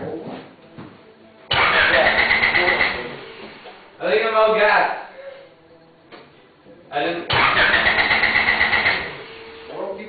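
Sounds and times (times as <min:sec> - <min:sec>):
car engine cranking on starter: 0:01.5 - 0:03.2, 0:07.3 - 0:09.7.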